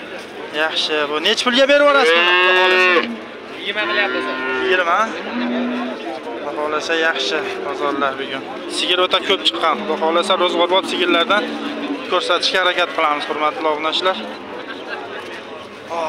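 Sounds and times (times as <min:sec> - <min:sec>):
cow mooing: 0:02.0 - 0:03.2, 0:03.8 - 0:06.1, 0:07.0 - 0:12.5.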